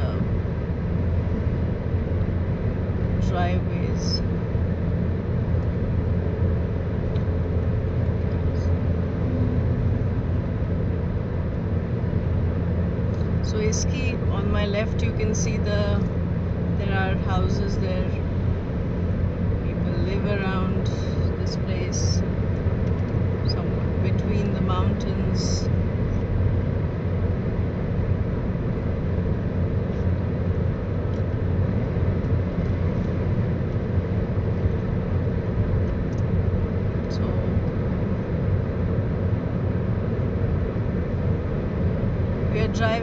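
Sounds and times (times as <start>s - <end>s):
car cabin road and engine noise: 0.0s - 43.0s.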